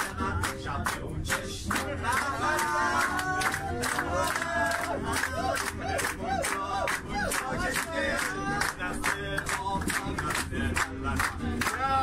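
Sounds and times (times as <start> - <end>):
group singing and shouting: 0.0 - 12.0
rhythmic hand-clapping: 0.0 - 12.0.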